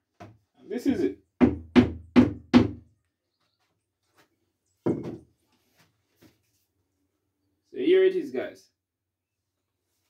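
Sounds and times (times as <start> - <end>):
wood knocking on pipe: 1.4 - 2.8, 4.9 - 5.2.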